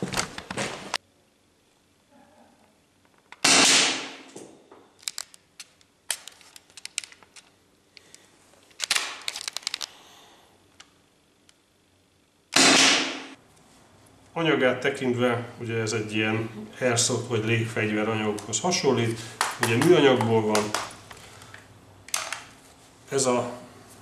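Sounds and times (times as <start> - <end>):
marker handling clicks and rattles: 5.0 - 10.0, 19.5 - 22.6.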